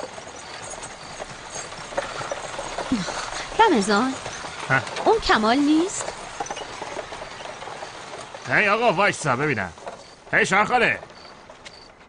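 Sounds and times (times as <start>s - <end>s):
horse hooves clip-clopping on pavement: 0.0s - 12.0s.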